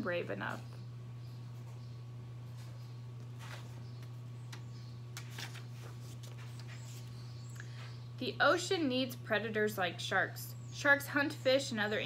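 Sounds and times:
steady low hum: 0:00.0 - 0:12.0
book pages rustling: 0:02.5 - 0:07.2.

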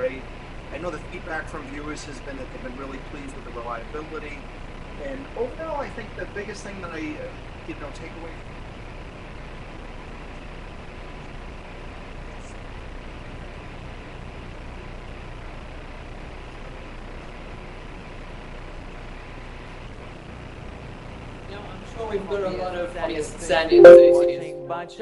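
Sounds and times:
line noise hiss: 0:00.0 - 0:22.1.

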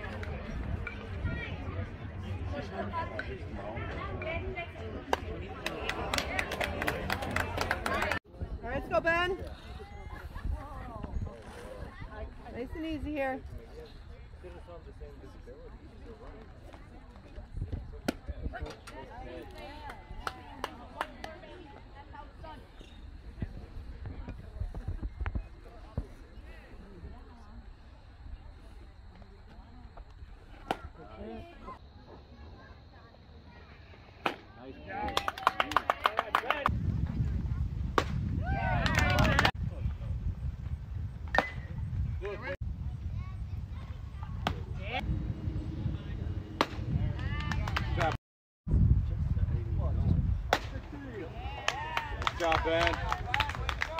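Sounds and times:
steady low rumble: 0:39.5 - 0:50.5.

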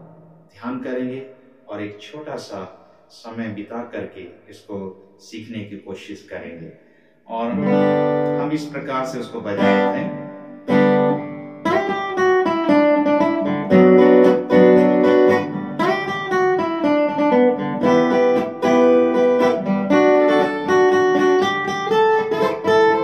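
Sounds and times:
acoustic guitar played slowly: 0:00.0 - 0:00.6, 0:07.4 - 0:23.0.

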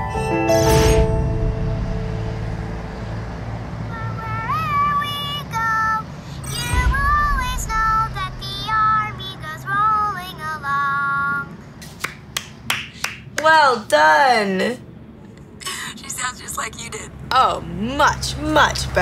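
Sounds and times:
low steady hum: 0:01.0 - 0:11.1
girl singing: 0:03.9 - 0:06.1, 0:06.7 - 0:11.5.

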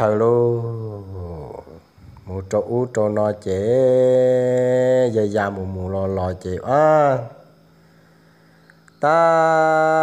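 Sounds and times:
person chanting: 0:00.0 - 0:07.6, 0:08.9 - 0:10.0.

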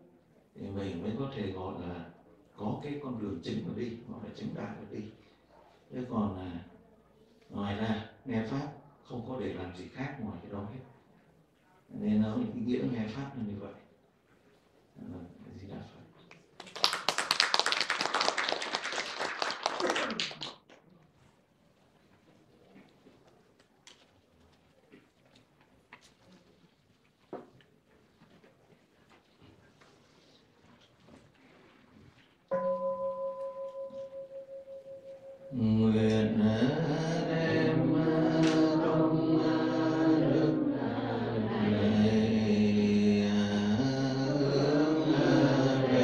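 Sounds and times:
audience applauding: 0:16.6 - 0:20.7
bowl bell ringing: 0:32.5 - 0:35.6
chanting through microphone: 0:35.5 - 0:46.0.

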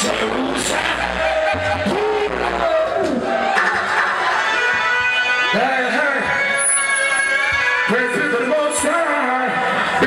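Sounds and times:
reggae band playing: 0:00.0 - 0:10.0.

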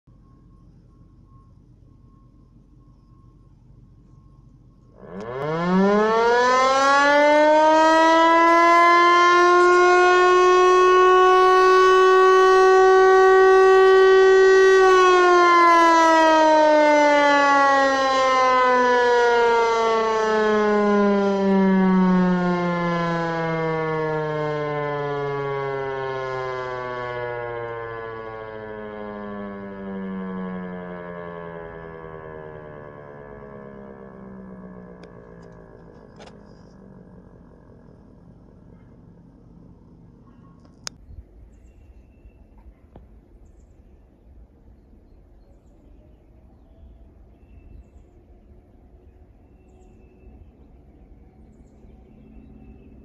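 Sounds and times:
tower siren winding: 0:04.0 - 0:38.3.

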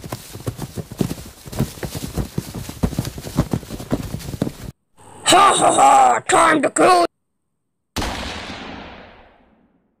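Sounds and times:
gunshot: 0:08.0 - 0:10.0.

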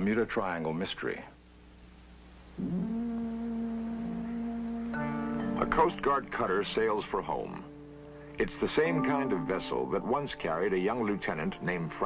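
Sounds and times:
synthesizer note sliding up: 0:02.6 - 0:05.6.

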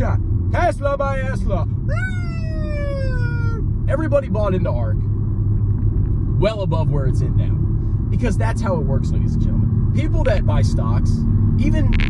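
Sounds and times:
car rumble from inside: 0:00.0 - 0:12.0.

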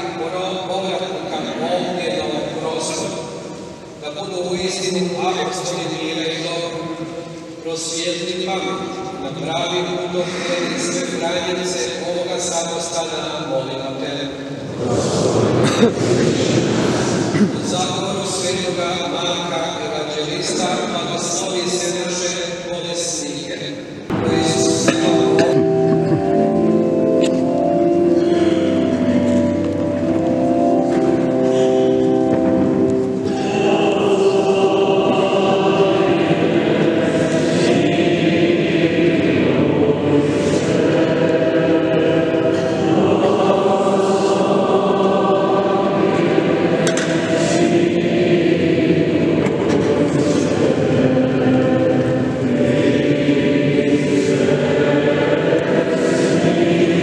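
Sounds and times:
hymn with sustained chords: 0:00.0 - 0:57.0.

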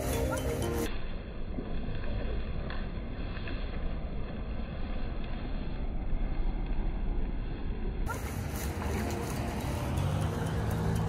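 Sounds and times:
background music with held notes: 0:00.0 - 0:01.0, 0:08.2 - 0:11.0
low rumbling noise: 0:00.0 - 0:11.0.

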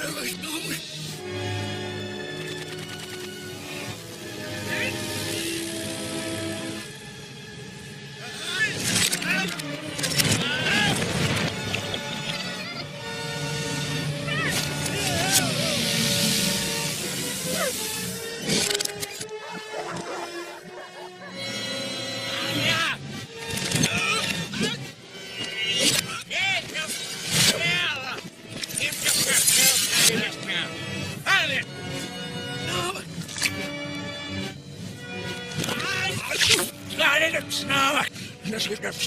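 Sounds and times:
reversed shouts and cries: 0:12.5 - 0:18.0, 0:19.3 - 0:23.0.

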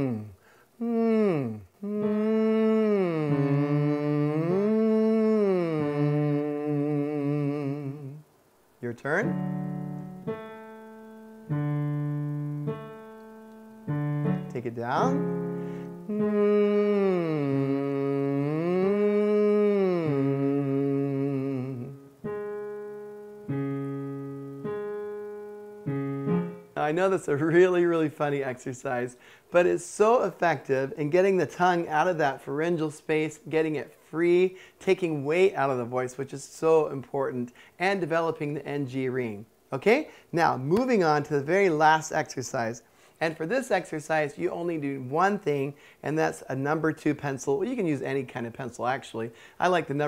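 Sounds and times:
man humming nasal notes: 0:00.0 - 0:08.4, 0:09.1 - 0:26.9
keyboard chords: 0:01.0 - 0:08.2, 0:09.1 - 0:27.2.

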